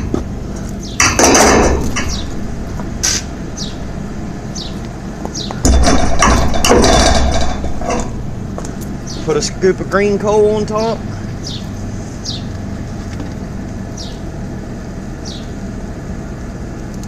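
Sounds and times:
air blower humming: 0:00.0 - 0:17.0.

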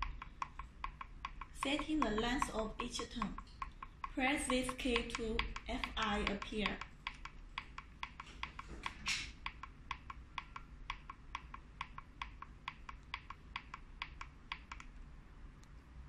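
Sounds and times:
push-buttons clicking: 0:00.0 - 0:15.0.

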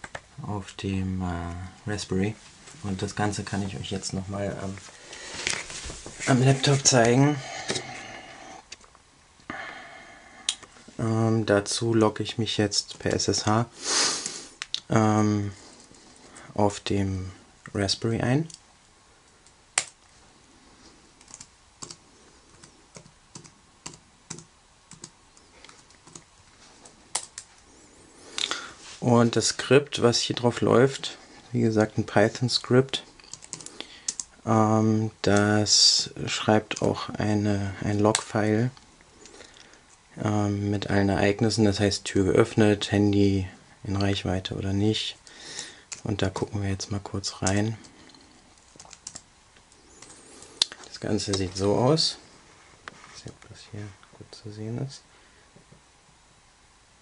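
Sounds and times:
laptop keyboard typing: 0:19.8 - 0:20.0, 0:21.2 - 0:26.3, 0:27.1 - 0:27.5, 0:33.2 - 0:34.3, 0:48.6 - 0:50.2.

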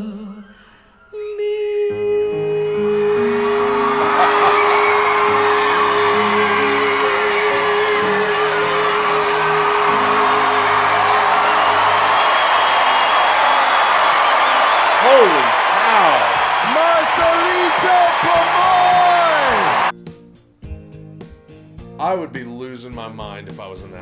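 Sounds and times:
audience cheering and whooping: 0:03.1 - 0:19.9.

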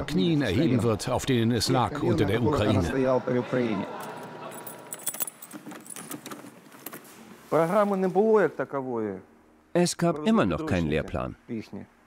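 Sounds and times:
keys jingling in door lock: 0:04.0 - 0:07.0.

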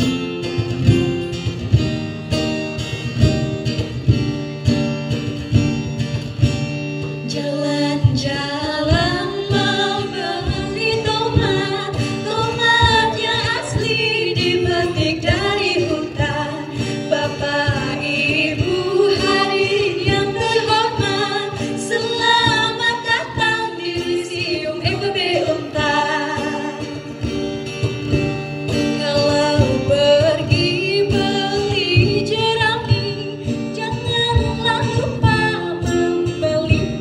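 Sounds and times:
guitar strumming chords: 0:00.0 - 0:37.0
person singing: 0:07.3 - 0:27.1.

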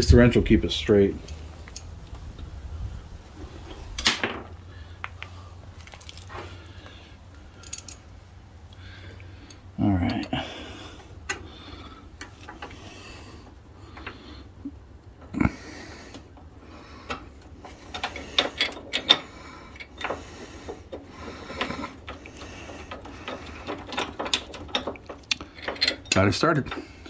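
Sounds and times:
small metallic clicks and clinks: 0:07.6 - 0:08.1, 0:21.6 - 0:26.9.

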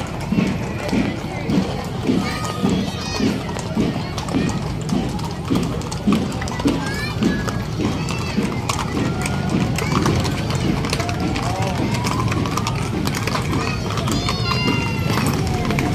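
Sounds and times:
crowd voices: 0:00.0 - 0:15.9
hooves clip-clopping on cobblestones: 0:00.0 - 0:15.9.

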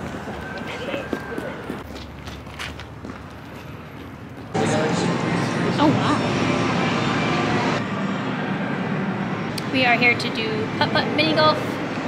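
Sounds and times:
arcade hall din: 0:04.5 - 0:11.9.

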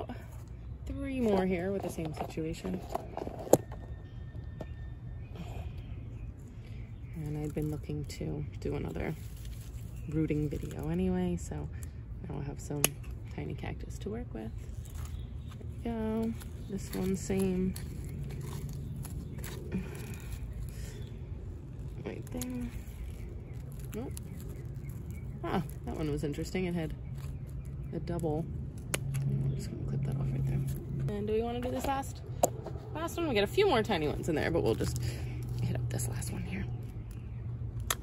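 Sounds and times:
low outdoor rumble: 0:00.0 - 0:38.0.

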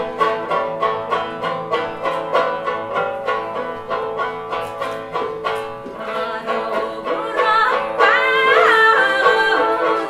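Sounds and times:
plucked long-necked lute: 0:00.0 - 0:10.0
woman singing: 0:06.0 - 0:10.0.

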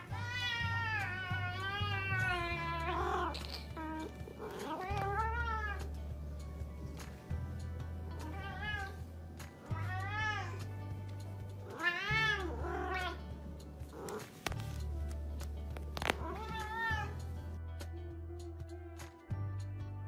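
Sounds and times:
cat meowing: 0:00.0 - 0:05.9, 0:08.2 - 0:09.0, 0:09.6 - 0:10.7, 0:11.6 - 0:13.2, 0:16.0 - 0:17.2
background music with bass line: 0:00.0 - 0:20.0.

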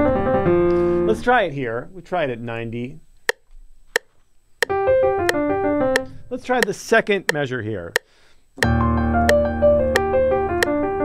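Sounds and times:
metronome clicking: 0:03.2 - 0:03.4, 0:04.0 - 0:10.8
piano run: 0:08.6 - 0:11.0.

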